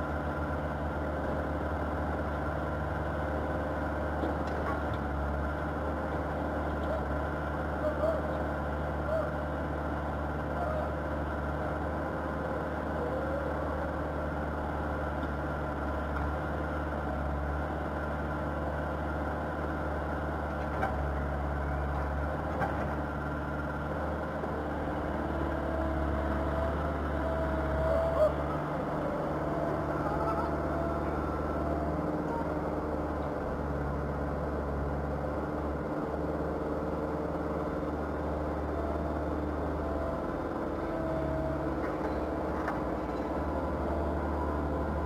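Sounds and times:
diesel engine running: 0:00.0 - 0:45.0.

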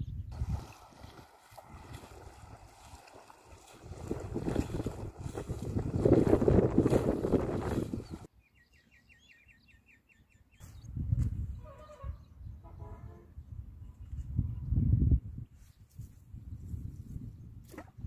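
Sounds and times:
legs wading through shallow water: 0:00.3 - 0:08.3.

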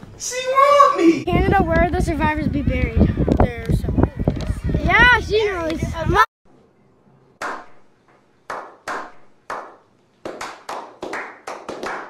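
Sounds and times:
hand clapping: 0:07.4 - 0:07.8, 0:08.5 - 0:12.0.

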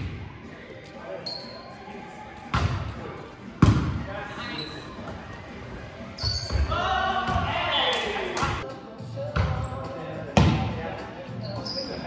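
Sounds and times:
volleyball slaps: 0:03.6 - 0:04.0.

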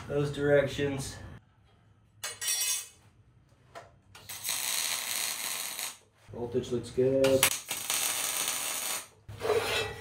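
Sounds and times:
welding arc crackle: 0:04.2 - 0:06.0, 0:07.4 - 0:09.2.

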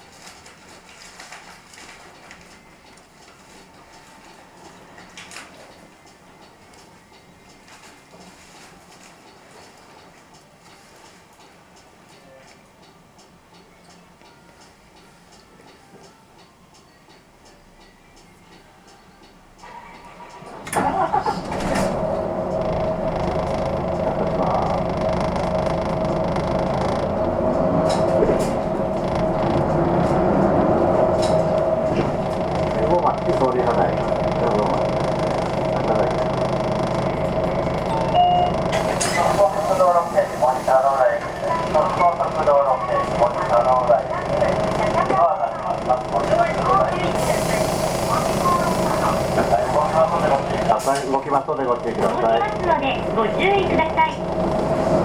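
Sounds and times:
bus engine running: 0:19.6 - 0:55.0.

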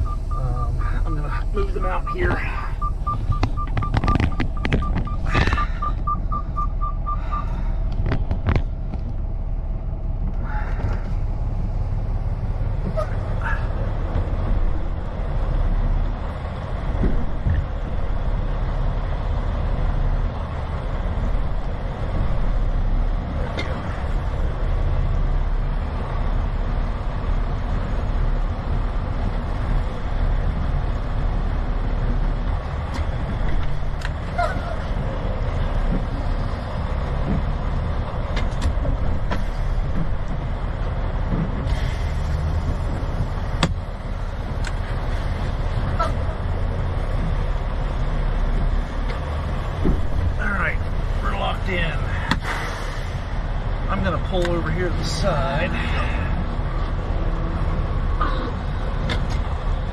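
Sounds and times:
rapid beeping warning chime: 0:00.0 - 0:07.6
diesel truck engine rumbling: 0:00.0 - 0:59.9.

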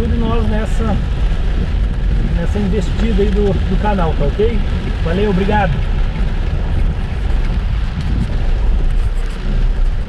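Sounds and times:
car engine and tyres rumbling: 0:00.0 - 0:10.0
rain: 0:00.0 - 0:10.0.

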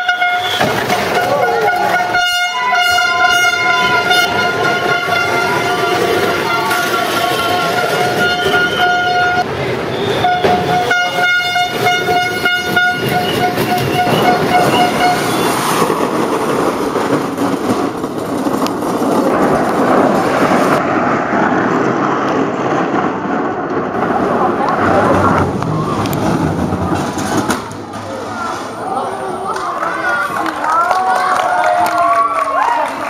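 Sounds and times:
voices: 0:00.0 - 0:15.4, 0:24.0 - 0:33.0
horn toots: 0:00.0 - 0:15.6
steady rushing noise: 0:00.6 - 0:30.7.

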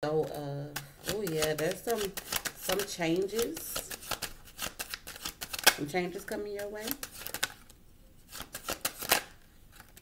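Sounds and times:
cards being shuffled: 0:00.8 - 0:10.0.

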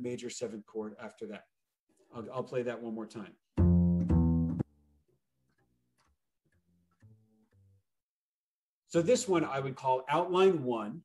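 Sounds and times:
plucked double bass walking line: 0:03.6 - 0:04.8.

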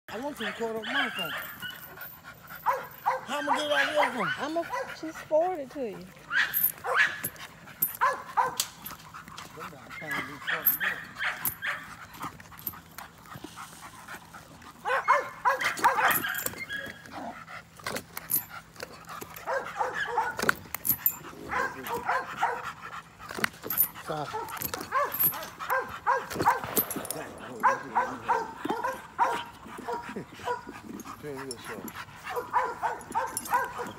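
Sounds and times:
dog barking and yipping: 0:00.1 - 0:12.9, 0:14.6 - 0:17.4, 0:18.4 - 0:33.9.

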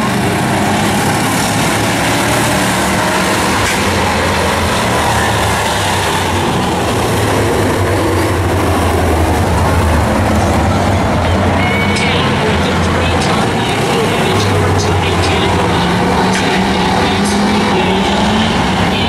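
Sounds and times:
racing car engines: 0:00.0 - 0:19.0.

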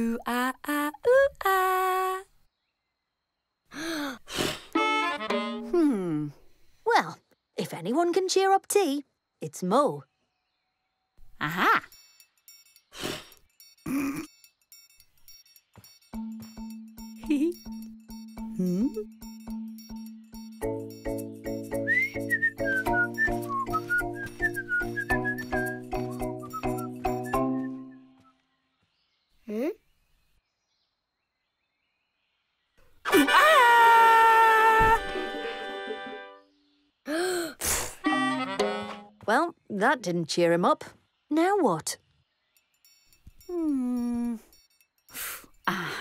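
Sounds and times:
bouncy children's music: 0:04.8 - 0:05.8, 0:15.8 - 0:28.1, 0:34.9 - 0:36.4, 0:38.1 - 0:39.3
person whistling a tune: 0:21.8 - 0:28.2.

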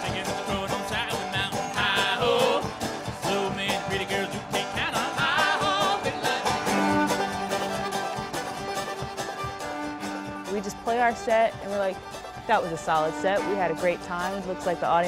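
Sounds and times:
strummed resonator guitar: 0:00.0 - 0:15.0.

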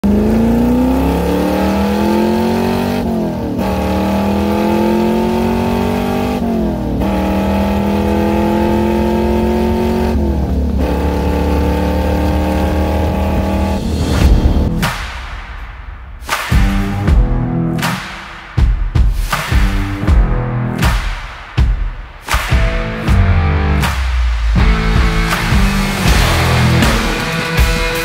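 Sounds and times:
car engine accelerating: 0:00.0 - 0:14.8, 0:23.0 - 0:27.5.

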